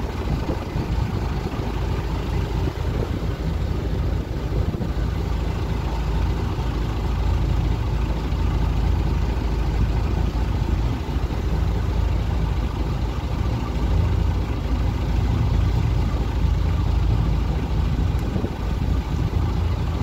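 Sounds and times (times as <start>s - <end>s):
boat engine idling: 0.0s - 20.0s.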